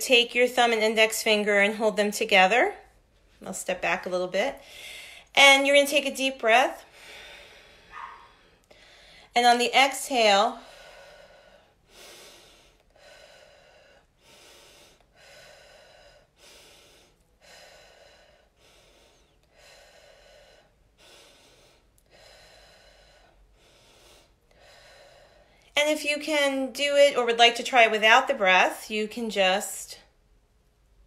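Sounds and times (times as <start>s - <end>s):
woman breathing deeply: 4.6s - 5.3s, 6.8s - 9.3s, 10.6s - 25.8s.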